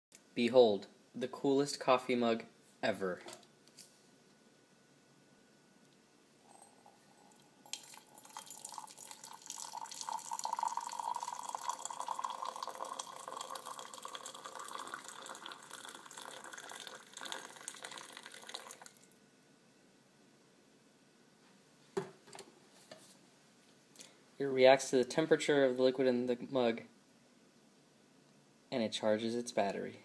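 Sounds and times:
hot liquid pouring into mug: 0:06.5 - 0:19.1.

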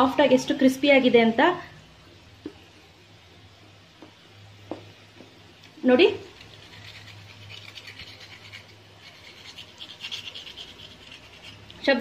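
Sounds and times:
speech: 0:00.0 - 0:01.7, 0:05.8 - 0:06.3, 0:11.8 - 0:12.0.

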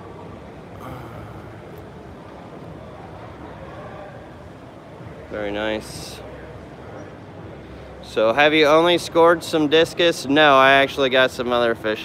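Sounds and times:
exhibition hall background noise: 0:00.0 - 0:12.0
faint distant voices: 0:00.0 - 0:12.0.

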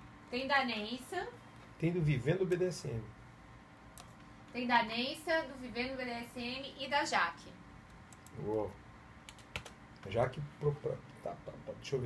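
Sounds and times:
computer keyboard clicks: 0:08.1 - 0:08.6, 0:09.2 - 0:09.8.

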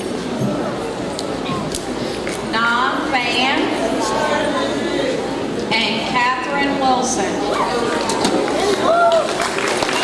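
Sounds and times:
murmured audience chatter: 0:00.0 - 0:10.0.

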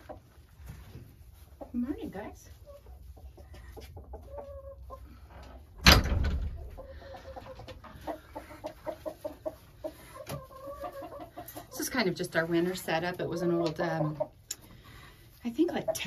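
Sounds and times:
chickens clucking: 0:00.0 - 0:05.8, 0:06.4 - 0:16.0.

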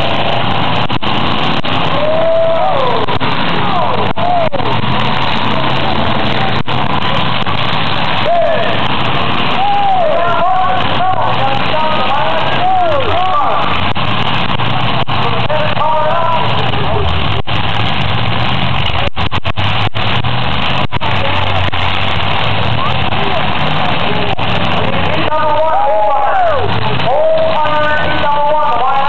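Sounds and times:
car engines revving loudly: 0:00.0 - 0:29.0.

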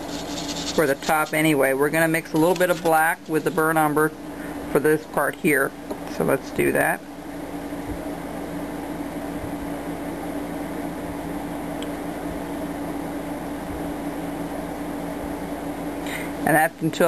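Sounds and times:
steady mechanical hum: 0:00.0 - 0:17.0.

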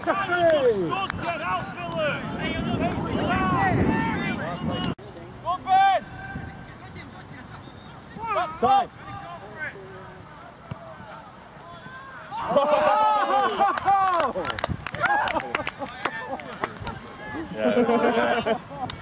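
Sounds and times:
players shouting and cheering: 0:00.0 - 0:19.0.

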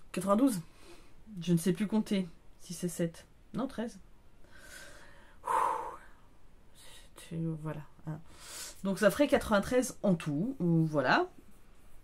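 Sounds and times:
woman breathing out: 0:04.4 - 0:06.3.

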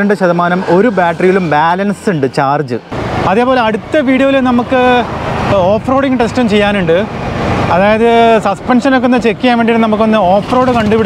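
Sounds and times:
man talking: 0:00.0 - 0:11.0
wind and road noise: 0:00.0 - 0:11.0.

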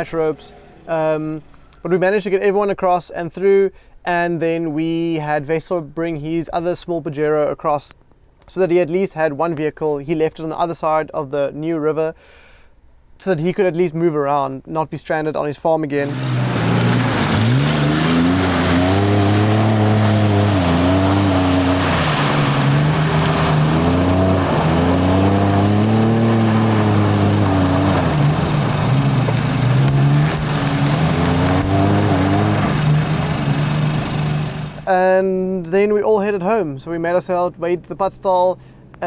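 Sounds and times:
engine revving: 0:16.0 - 0:34.9.

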